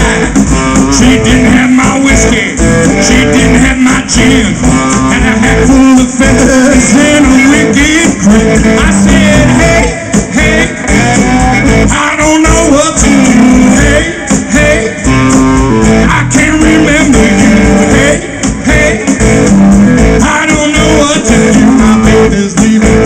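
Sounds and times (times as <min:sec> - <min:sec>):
blues band playing: 0:00.0 - 0:23.0
lead guitar: 0:00.0 - 0:23.0.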